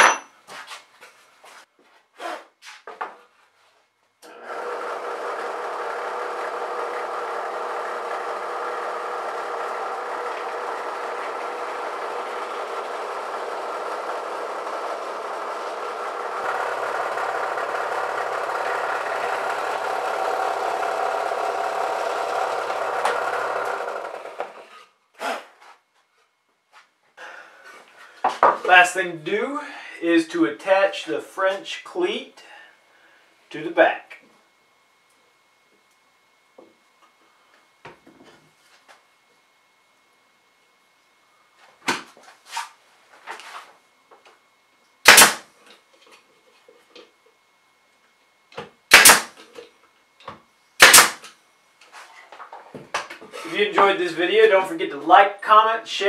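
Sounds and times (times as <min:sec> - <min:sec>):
drill press motor drilling wood: 0:04.2 - 0:24.8.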